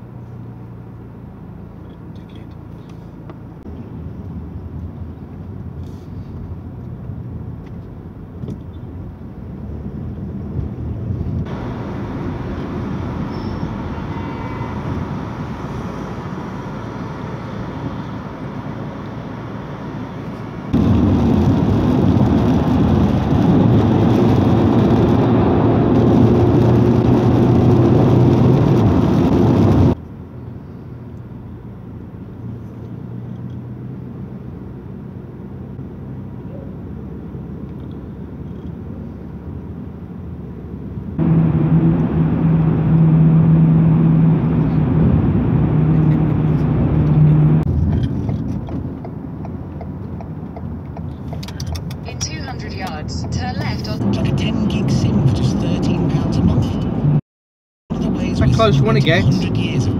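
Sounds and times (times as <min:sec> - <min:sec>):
road and engine noise in car: 0:00.0 - 0:57.2, 0:57.9 - 0:59.9
low drone: 0:41.2 - 0:47.7.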